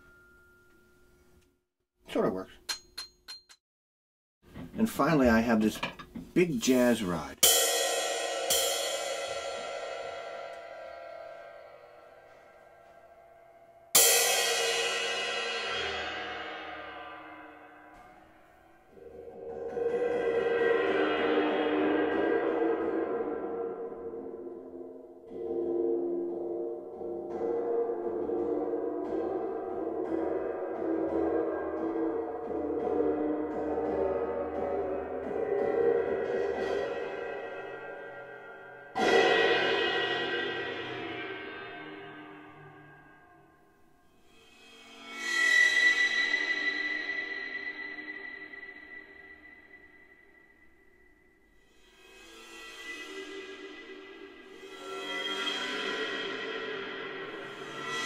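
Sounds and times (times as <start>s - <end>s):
cymbal ring bending in pitch: 0.0s - 1.4s, 7.4s - 58.0s
ride cymbal struck with drumstick: 7.4s - 12.4s.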